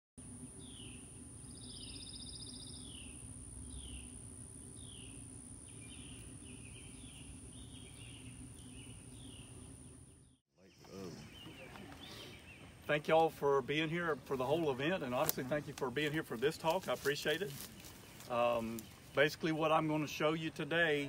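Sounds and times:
low background noise: 0.2s - 21.0s
bird calling with whistled notes: 0.6s - 4.2s, 4.8s - 12.8s
bird trill: 0.6s - 12.8s.

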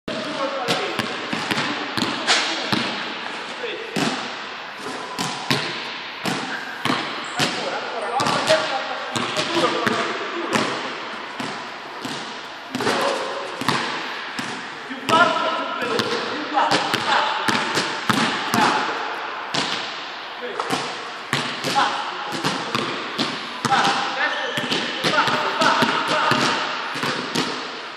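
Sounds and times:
basketball bouncing on court floor: 0.1s - 3.1s, 5.1s - 7.6s, 8.2s - 18.8s, 20.6s - 27.7s.

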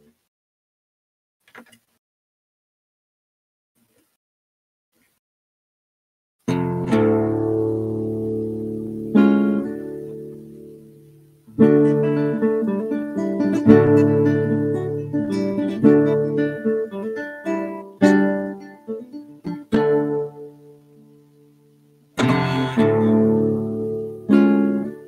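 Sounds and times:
nylon-string guitar playing: 6.4s - 25.0s.

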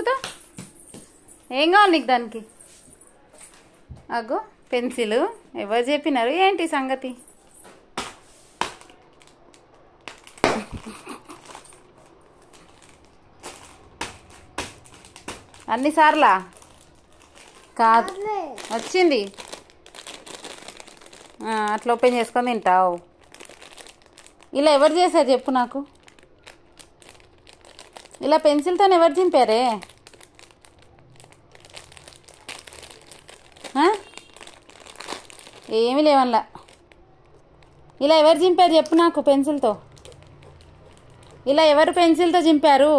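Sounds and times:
faint crinkling: 7.0s - 42.0s
person speaking: 17.7s - 19.3s
high-pitched voice: 18.0s - 18.7s.

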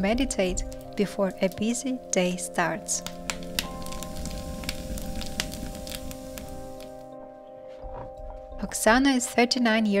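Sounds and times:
firewood crackling and popping: 0.0s - 7.2s
background music: 0.0s - 10.0s.

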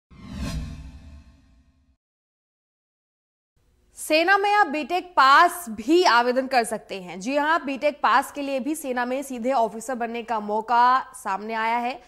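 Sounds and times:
whoosh sound effect: 0.1s - 1.9s.

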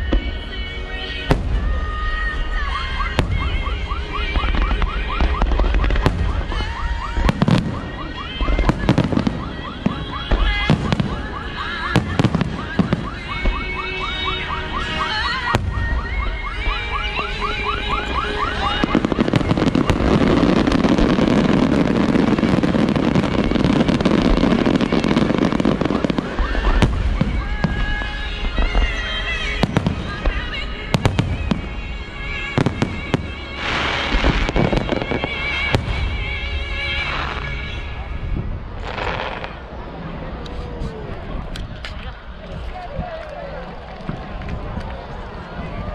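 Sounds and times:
fireworks booming: 1.2s - 40.2s.

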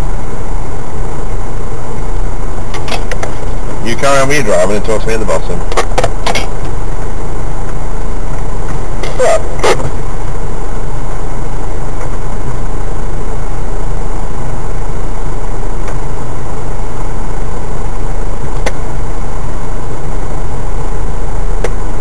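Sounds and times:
engine running at low revs: 0.0s - 22.0s.

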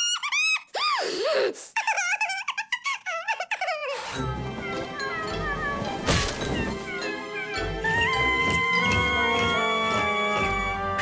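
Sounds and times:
cartoon background music: 4.0s - 11.0s.

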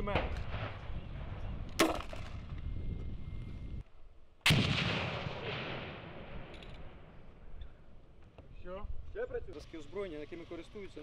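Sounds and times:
grenade launcher firing: 1.8s - 2.4s, 4.4s - 6.5s
grenade explosion rumbling: 4.5s - 7.0s.

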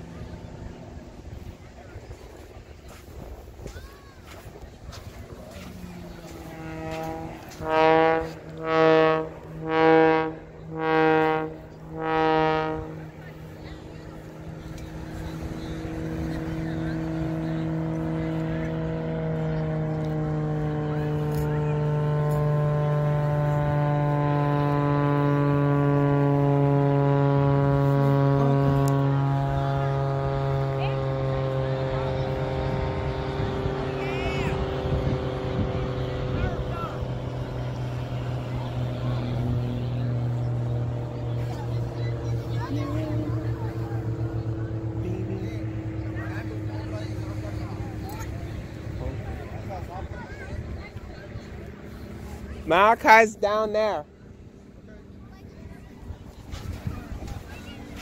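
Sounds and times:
airplane engine drone overhead: 0.0s - 58.0s
deep horn blasts: 4.4s - 54.1s.

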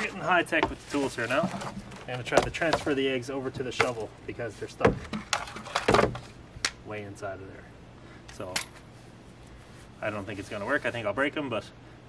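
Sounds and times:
grabber tool scraping dirt and stones: 0.0s - 5.9s.

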